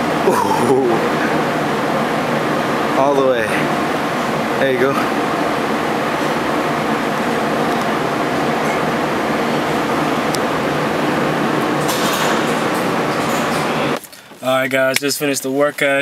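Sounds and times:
evaporative cooling fan running: 0.0 - 16.0.

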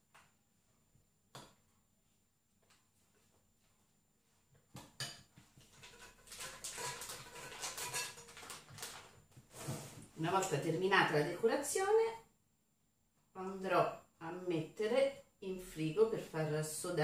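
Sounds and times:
scraping and rustling: 5.5 - 10.1
metal spoon clinking glass bowl: 6.3 - 8.6.

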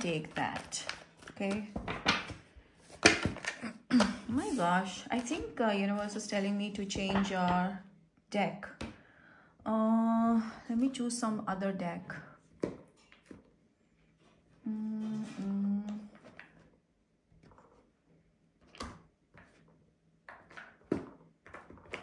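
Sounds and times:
person humming: 14.6 - 16.2.

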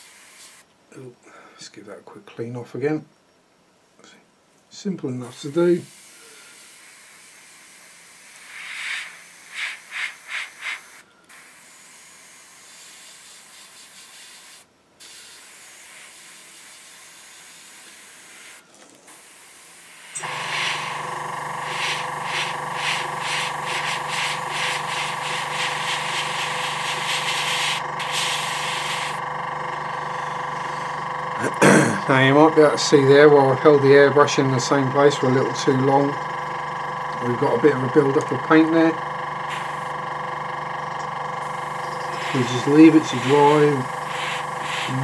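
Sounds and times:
airbrush spraying hiss: 0.0 - 0.6, 5.2 - 29.2, 39.5 - 39.9, 41.4 - 45.0
compressor motor humming: 15.2 - 45.0.

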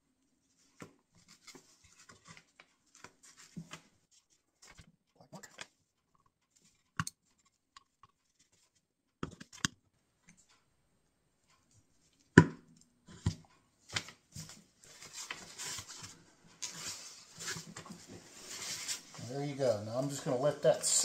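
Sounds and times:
box rustling and scraping: 14.4 - 19.3.

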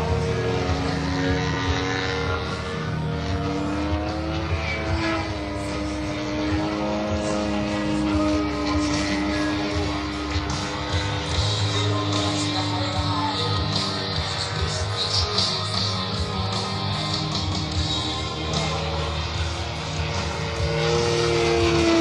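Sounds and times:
background music: 0.0 - 22.0
model plane engine drone: 0.0 - 22.0.

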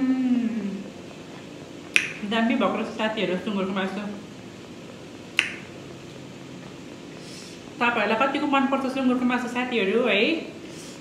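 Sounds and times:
room noise: 0.0 - 11.0
mouth click: 1.9 - 2.2, 5.4 - 5.7.

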